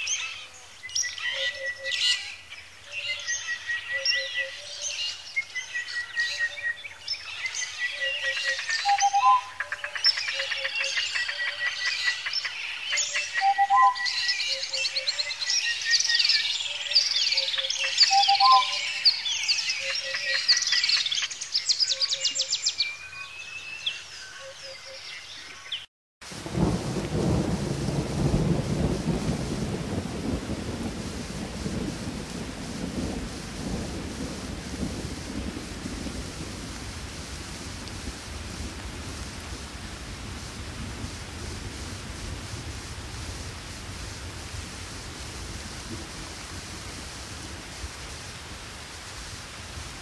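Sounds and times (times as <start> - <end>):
rain-like hiss: 0.0 - 50.0
low whistled call: 8.0 - 11.6, 13.0 - 15.0, 17.2 - 20.8
thunder rumble: 26.3 - 50.0.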